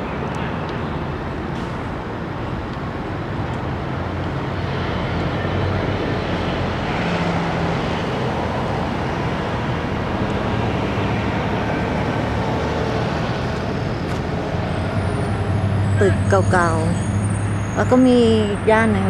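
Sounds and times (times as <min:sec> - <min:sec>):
road traffic with engine hum: 0:00.0 - 0:19.0.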